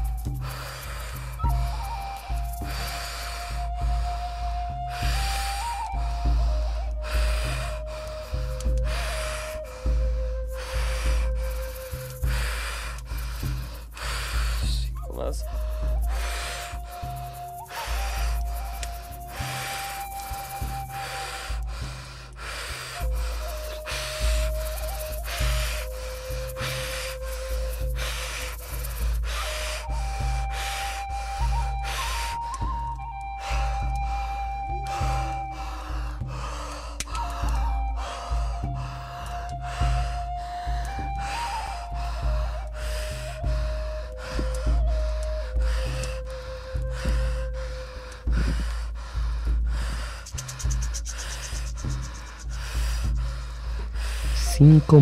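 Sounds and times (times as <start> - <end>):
person breathing hard and fast: 0.0 - 55.0
slow melodic background music: 0.0 - 55.0.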